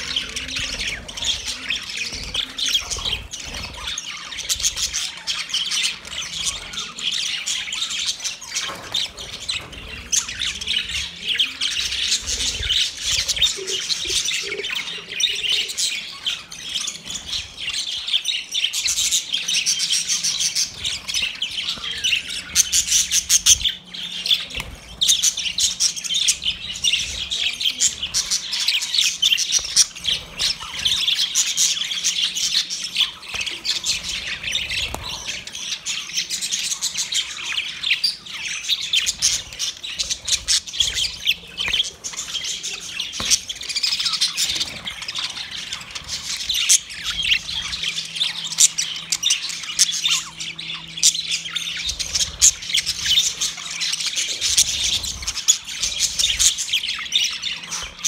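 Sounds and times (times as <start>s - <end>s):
budgerigars chattering: 0.0s - 58.0s.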